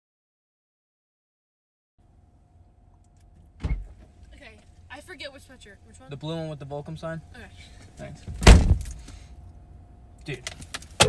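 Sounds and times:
low cabin hum: 0:02.0 - 0:11.0
car door thudding shut: 0:03.6 - 0:04.0, 0:08.2 - 0:09.0.

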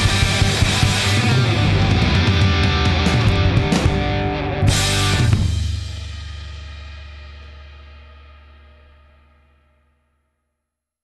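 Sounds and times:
rock chord ringing out: 0:00.0 - 0:09.5.

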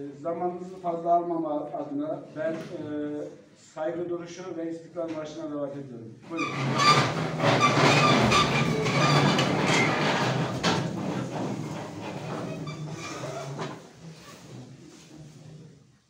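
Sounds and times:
chairs scraping across floor: 0:06.2 - 0:15.8.

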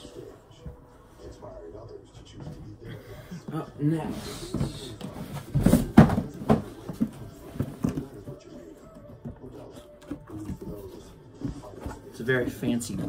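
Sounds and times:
cardboard box rustling: 0:04.0 - 0:12.7
cardboard box knocking: 0:04.5 - 0:08.4.

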